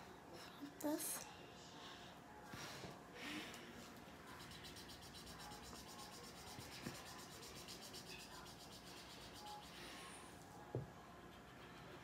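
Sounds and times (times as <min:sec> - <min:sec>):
marker scribbling on paper: 0:04.3 - 0:09.8.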